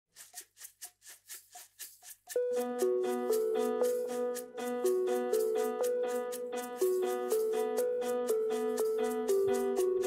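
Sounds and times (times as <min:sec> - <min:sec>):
shaker played in steady rhythm: 0:00.1 - 0:10.0.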